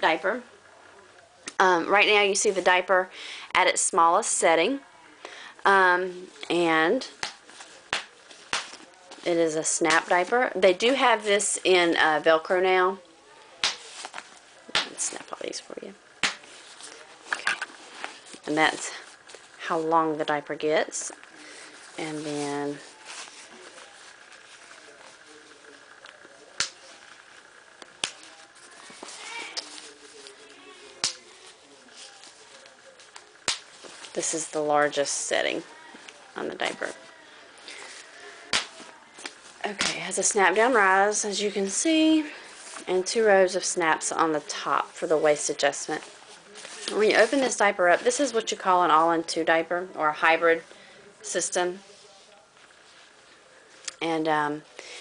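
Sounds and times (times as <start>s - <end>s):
soft fabric rustling: 5.7s - 54.8s
plastic snaps popping open: 26.6s - 26.8s.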